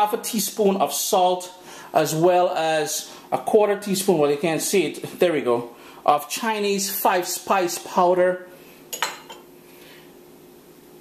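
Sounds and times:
faint steady hum: 0.0s - 11.0s
metal ramekin clinking on counter: 8.9s - 9.4s.

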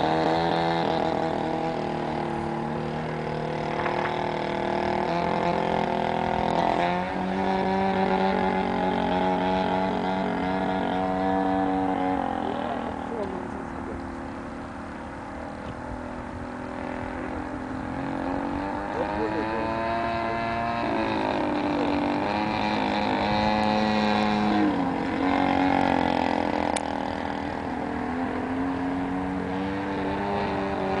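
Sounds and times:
model aeroplane engine overhead: 0.0s - 31.0s.

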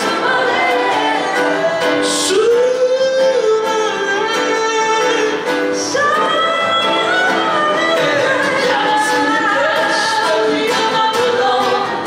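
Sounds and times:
person singing: 0.0s - 12.0s
strummed acoustic guitars: 0.0s - 12.0s.

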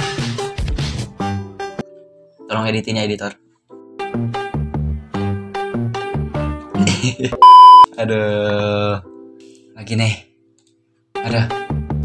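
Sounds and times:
censor bleep tone: 7.4s - 7.9s.

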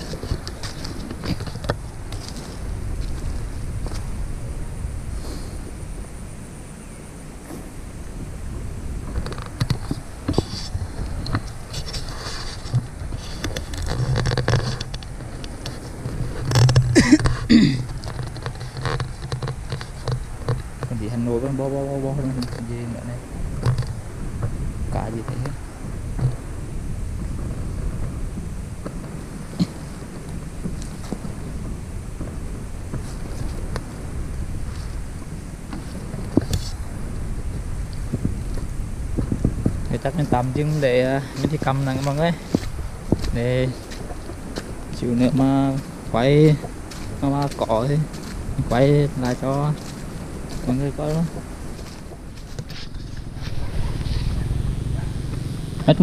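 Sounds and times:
faint high whine: 0.0s - 56.0s
wind rumbling on microphone: 0.0s - 56.0s.

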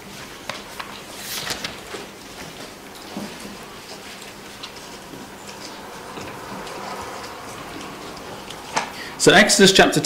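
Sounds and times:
low room hum: 0.0s - 10.0s
pages being turned: 0.1s - 8.9s.

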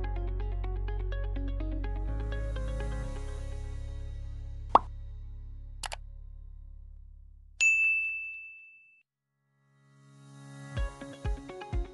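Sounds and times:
low music drone: 0.0s - 7.2s
bright bell ding: 7.6s - 9.0s.

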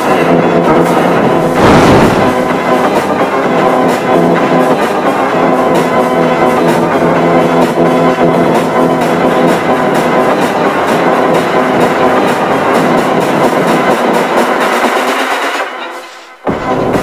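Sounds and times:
distorted music with fast beat: 0.0s - 17.0s.

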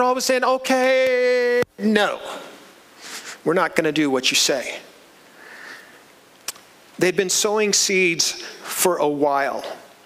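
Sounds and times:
man sniffing: 3.0s - 3.4s.

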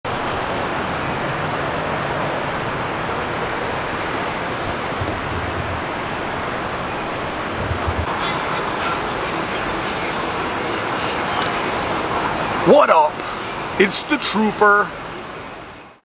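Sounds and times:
city traffic noise: 0.0s - 16.0s
low vehicle rumble: 0.1s - 11.3s.

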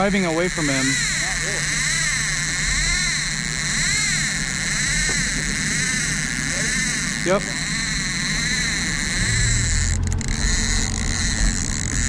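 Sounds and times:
boat motor running: 0.0s - 12.0s
rising and falling whine: 0.0s - 12.0s.

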